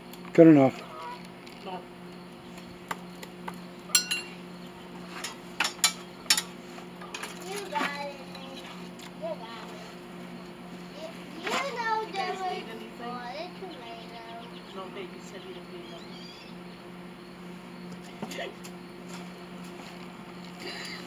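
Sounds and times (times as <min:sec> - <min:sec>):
steady low hum: 0:00.0 - 0:21.0
metal clinks and taps: 0:03.9 - 0:04.3.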